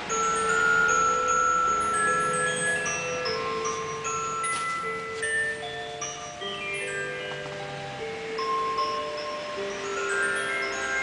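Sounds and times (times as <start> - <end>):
soft chime music: 0.0 - 11.0.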